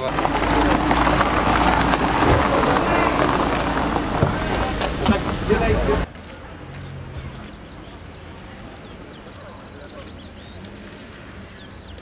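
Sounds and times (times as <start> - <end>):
loud low rumbling: 0.0 - 6.1
indistinct outdoor voices: 0.0 - 12.0.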